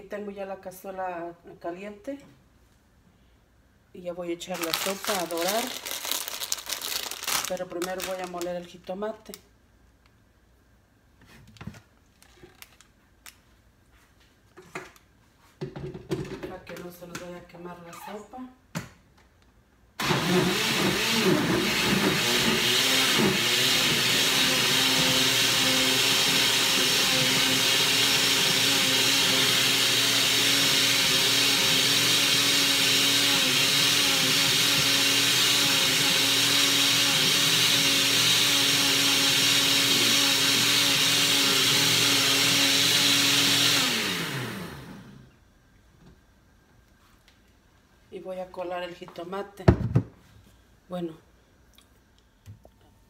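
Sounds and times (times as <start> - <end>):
blender running: 20.0 - 45.2.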